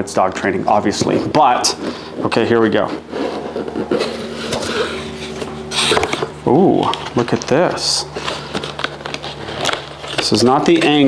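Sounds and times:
steady low hum: 0.0 - 11.0
cardboard lid sliding: 2.7 - 6.3
cardboard box being opened: 2.7 - 7.4, 8.1 - 11.0.

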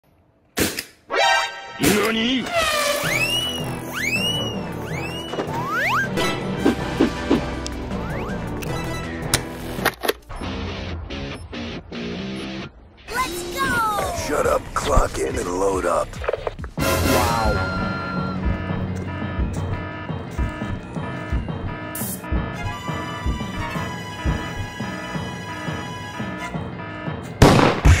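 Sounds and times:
music: 1.1 - 28.0
music with steady beat: 16.2 - 26.7
loud explosion-like blasts: 27.4 - 28.0.

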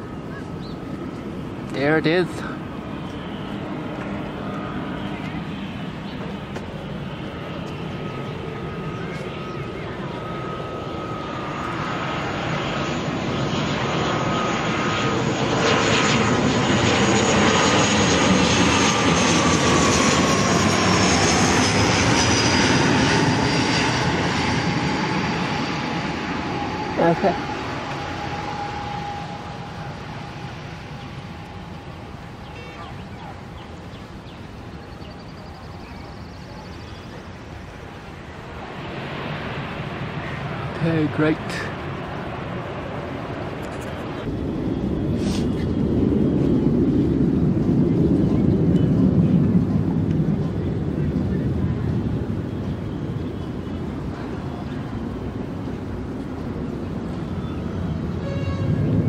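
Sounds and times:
turboprop aircraft engines: 0.0 - 59.0
engine whine falling in pitch: 19.4 - 37.2.

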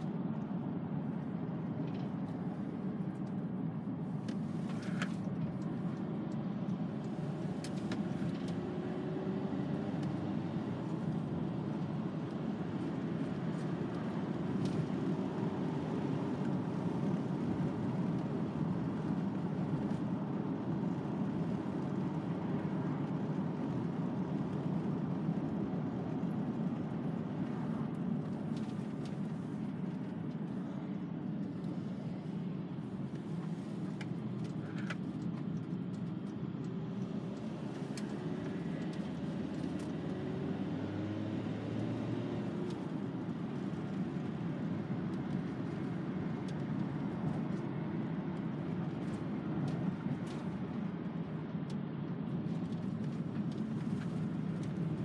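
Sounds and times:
van engine and tyre noise: 0.0 - 55.0.

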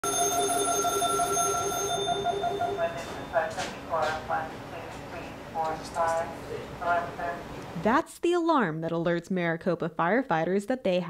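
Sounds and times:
warbling two-tone alarm: 0.0 - 3.5
person speaking: 2.4 - 7.5.

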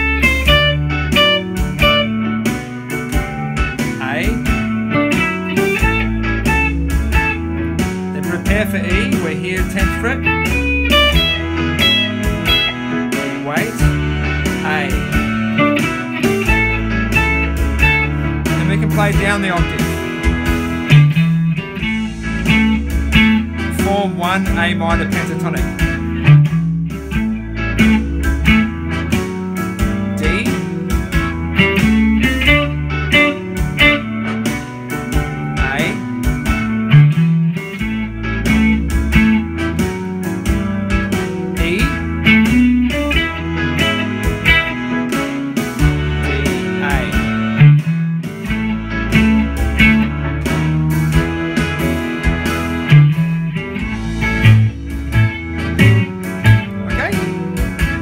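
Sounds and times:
blues backing track: 0.0 - 58.0
electric guitar blues lead: 0.0 - 58.0.

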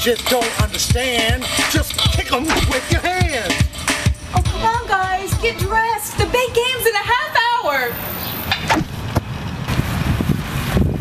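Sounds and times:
wind buffeting microphone: 8.6 - 11.0.

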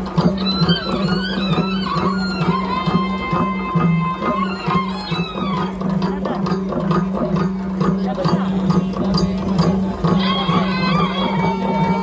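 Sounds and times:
crowd chatter: 0.0 - 12.0
drum strokes: 0.0 - 12.0.

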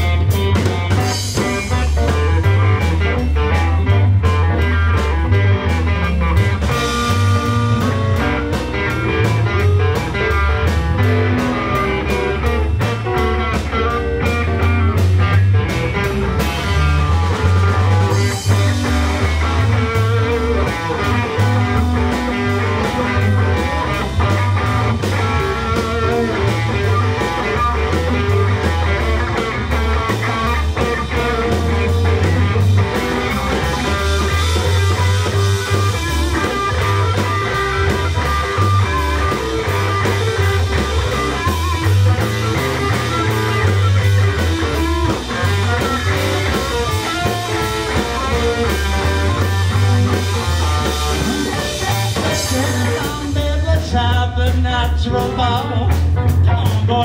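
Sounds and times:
blues band playing: 0.0 - 57.0.

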